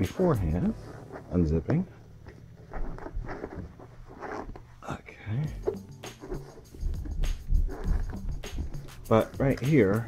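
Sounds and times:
zipper pulled open: 2.7s - 4.6s, 7.4s - 8.8s.

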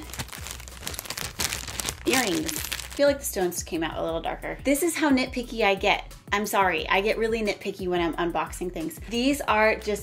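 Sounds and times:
plastic bag crinkling: 0.0s - 3.1s.

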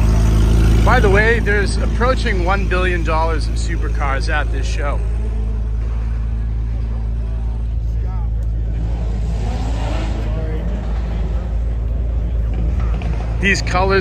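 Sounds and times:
car engine idling: 0.0s - 14.0s
people talking: 0.8s - 5.2s, 6.8s - 9.2s, 10.2s - 14.0s.

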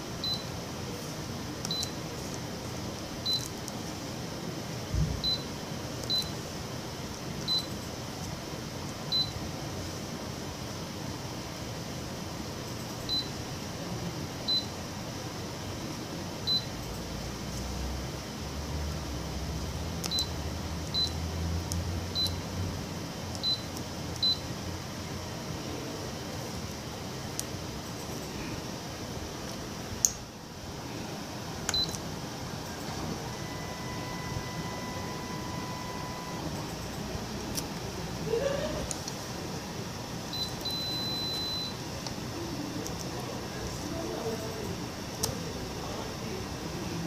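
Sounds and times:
copier control panel beeps: 0.2s - 0.5s, 1.6s - 2.0s, 3.2s - 3.6s, 5.2s - 6.4s, 7.4s - 7.8s, 9.1s - 9.4s, 13.0s - 13.4s, 14.5s - 14.8s, 16.4s - 16.8s, 20.0s - 21.2s, 22.1s - 22.4s, 23.3s - 24.5s, 31.7s - 32.0s, 32.8s - 36.8s, 40.3s - 41.9s
short high beeps: 40.3s - 41.8s.

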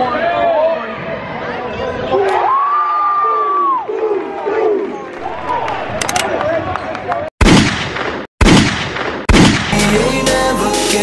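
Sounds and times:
crowd cheering: 1.4s - 7.3s.

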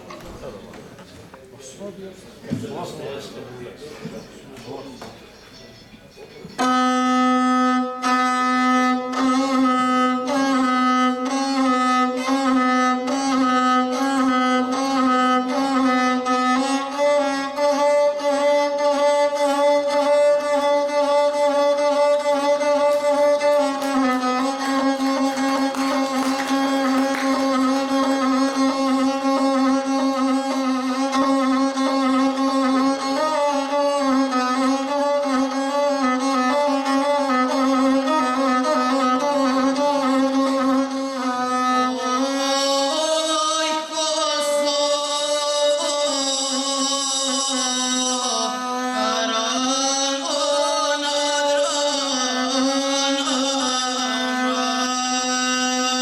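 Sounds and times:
bowed single-string fiddle: 6.5s - 56.0s.

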